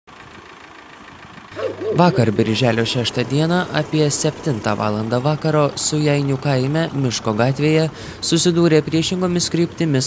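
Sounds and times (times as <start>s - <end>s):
person speaking: 1.6s - 7.9s.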